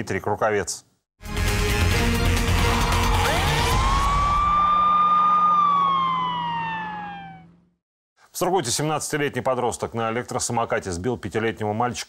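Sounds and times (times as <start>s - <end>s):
crashing title music: 1.2s - 4.6s
siren wailing: 2.6s - 7.8s.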